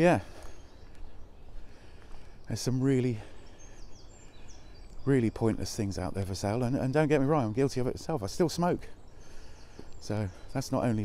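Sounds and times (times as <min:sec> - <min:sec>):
faint birds chirping: 0:00.0 - 0:11.0.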